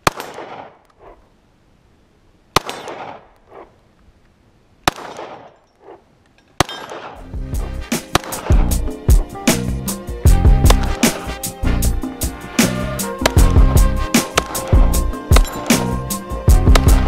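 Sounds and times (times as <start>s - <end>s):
pistol shots: 0.0s - 1.1s, 2.6s - 3.8s, 4.8s - 6.0s, 6.6s - 7.3s, 8.0s - 8.8s, 12.6s - 16.0s
music with a beat: 7.4s - 17.0s.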